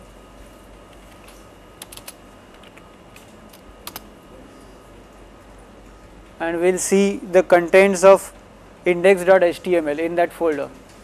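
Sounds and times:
computer keyboard keystrokes: 0:01.8 - 0:04.1.

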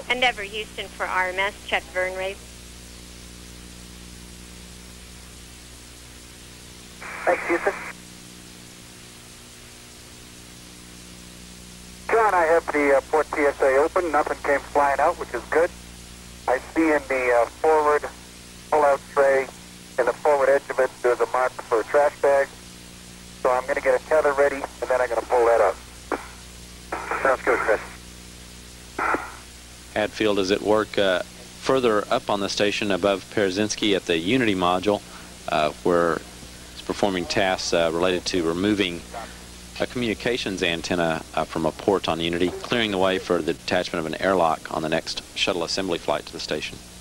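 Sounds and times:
low electrical hum: 0:00.0 - 0:47.0
steady hiss: 0:00.0 - 0:47.0
radio voice transmissions: 0:07.0 - 0:07.9, 0:12.1 - 0:15.8, 0:16.4 - 0:22.6, 0:23.4 - 0:28.0, 0:29.0 - 0:29.4, 0:30.0 - 0:46.7.

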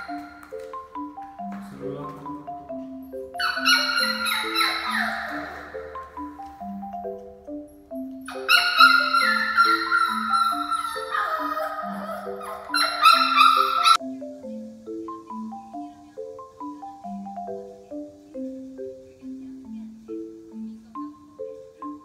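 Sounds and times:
marimba background music: 0:00.0 - 0:22.0
puppy whining: 0:03.4 - 0:06.0, 0:08.3 - 0:14.0.

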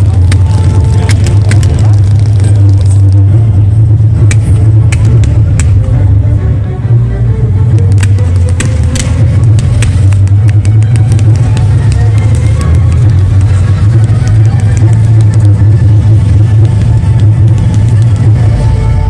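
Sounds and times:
fireworks cracking and banging: 0:00.0 - 0:05.8, 0:07.8 - 0:18.8
deep rumble: 0:00.0 - 0:19.0
show music: 0:00.0 - 0:19.0.

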